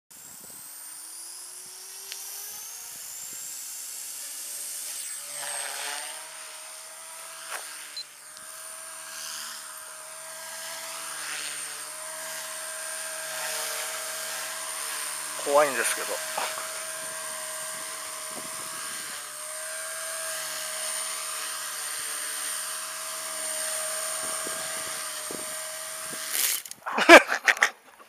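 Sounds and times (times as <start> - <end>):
rc helicopter motor and rotor whine: 0.1 - 27.7.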